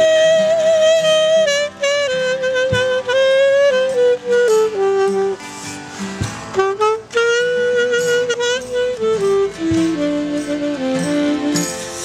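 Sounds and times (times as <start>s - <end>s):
alto saxophone solo: 0.0s - 12.0s
quiet accompaniment: 0.0s - 12.0s.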